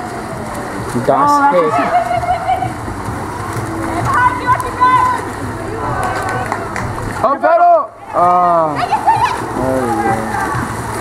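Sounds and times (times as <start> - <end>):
crowd noise: 0.0 - 11.0
spectators shouting: 1.4 - 8.2.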